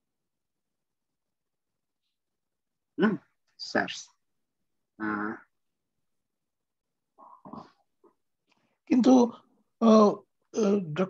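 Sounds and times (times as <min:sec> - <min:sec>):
person speaking: 0:08.8 - 0:11.0.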